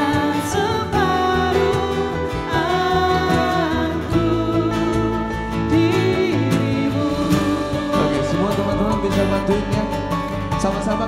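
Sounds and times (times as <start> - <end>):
woman singing: 0.0 - 9.0
man singing: 0.0 - 10.1
acoustic guitar: 0.0 - 11.0
keyboard: 0.0 - 11.0.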